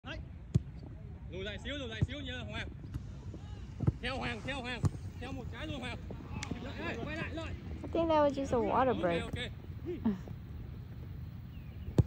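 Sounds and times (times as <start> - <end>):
players calling and shouting: 0.1 - 12.0
wind rumble on microphone: 2.2 - 12.0
ball being kicked: 2.8 - 5.4.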